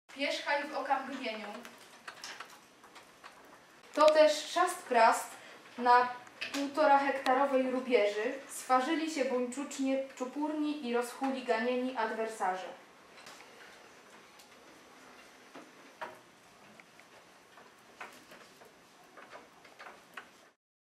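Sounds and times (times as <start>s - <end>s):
pens tapping on paper and desks: 13.2s - 20.5s.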